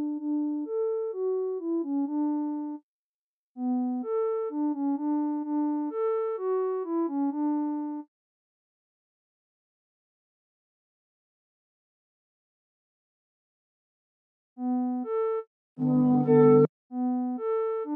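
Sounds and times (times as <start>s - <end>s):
synthesizer melody: 15.8s - 16.7s.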